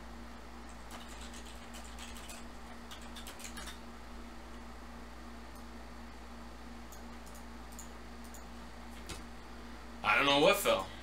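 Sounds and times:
low electrical hum: 0.0 - 11.0
keyboard and mouse clicks: 0.8 - 3.8.

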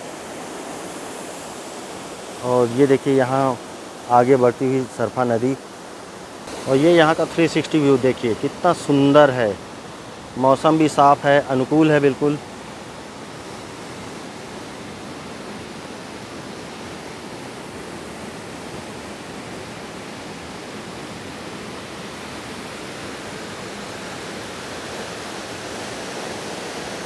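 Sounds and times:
water rushing: 0.0 - 27.0.

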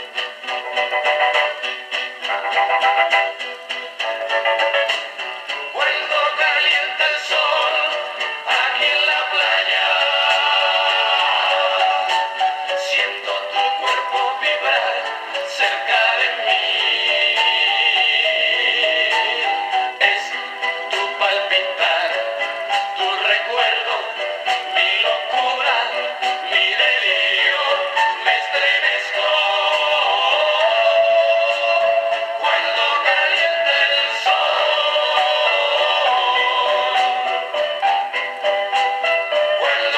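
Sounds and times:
pop song from small speaker: 0.0 - 39.9
men singing over band: 5.7 - 22.4, 23.0 - 37.2.

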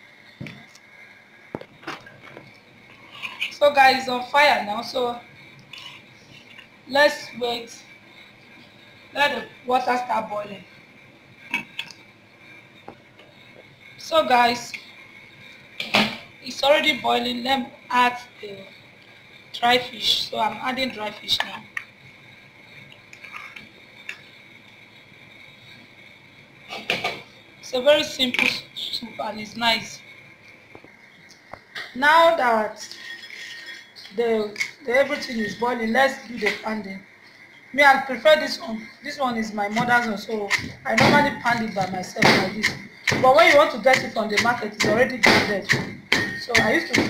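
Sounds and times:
soup boiling in pot: 18.6 - 27.7.

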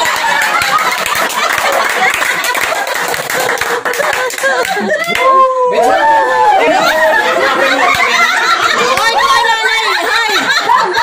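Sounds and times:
people laughing: 0.0 - 11.0
people talking: 4.0 - 11.0.

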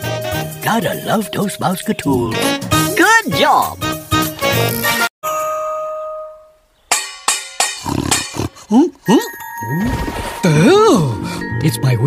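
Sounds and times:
metal pot clanging: 6.9 - 8.6.

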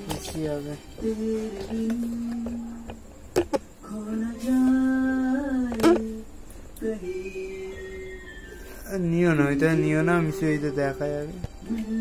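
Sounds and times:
person humming a long note: 9.6 - 12.0.

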